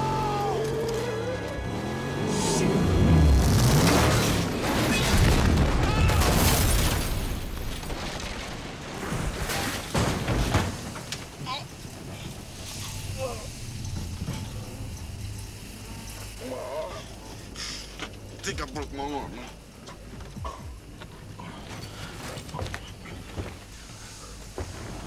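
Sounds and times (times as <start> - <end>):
car crash with flying debris: 3.3 - 15.6.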